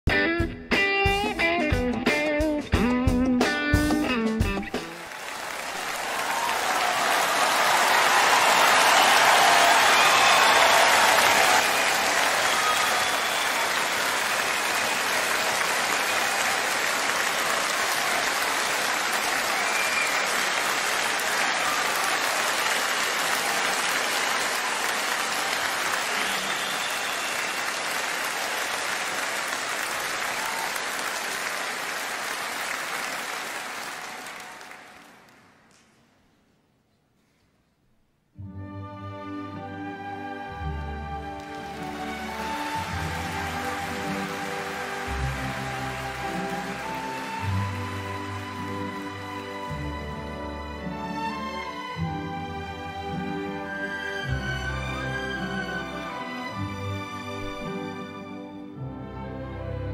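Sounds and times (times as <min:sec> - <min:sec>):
audience applauding: 0:03.8 - 0:36.0, 0:39.7 - 0:58.1.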